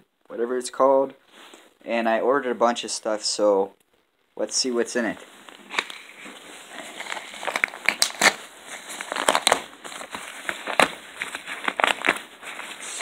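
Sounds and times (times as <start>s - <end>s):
paper mailer crinkling and tearing: 5.6s - 13.0s.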